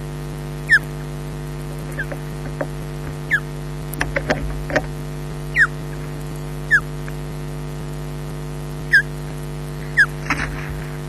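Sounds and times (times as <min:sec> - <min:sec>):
electrical hum: 0:00.0 - 0:11.0
bird whistled call: 0:00.7 - 0:00.9, 0:05.5 - 0:05.8, 0:06.7 - 0:06.9, 0:08.9 - 0:09.1.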